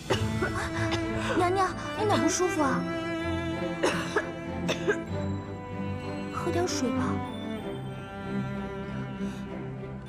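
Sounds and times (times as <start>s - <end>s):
string background music: 0.0s - 10.0s
woman coughing muffled: 0.1s - 1.4s, 3.8s - 5.1s.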